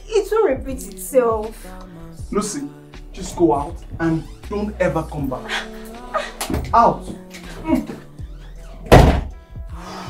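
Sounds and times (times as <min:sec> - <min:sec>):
background music: 0:00.0 - 0:10.0
door slamming shut: 0:08.8 - 0:09.4.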